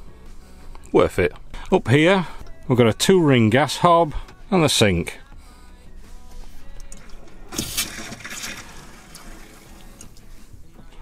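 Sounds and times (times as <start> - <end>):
quiet background music: 0.0 - 11.0
tap water splashing into sink: 7.5 - 10.3.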